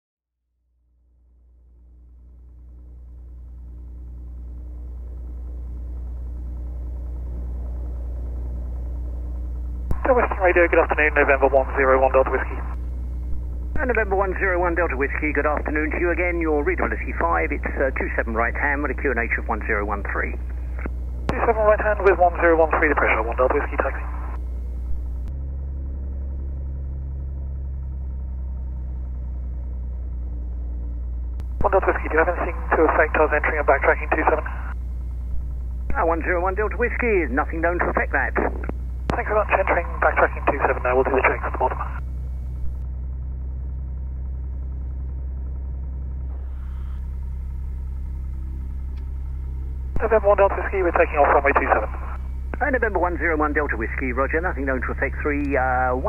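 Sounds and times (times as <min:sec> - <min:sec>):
aircraft engine idling: 0:00.9 - 0:56.0.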